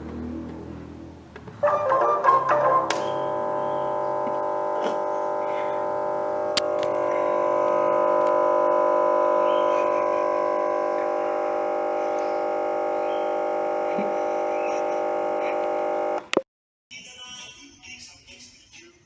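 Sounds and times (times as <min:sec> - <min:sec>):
loud electronic buzz: 0:02.4 - 0:16.3.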